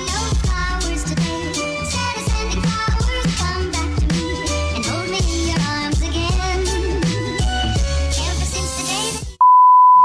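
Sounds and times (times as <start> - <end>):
background music: 0.0 - 9.4.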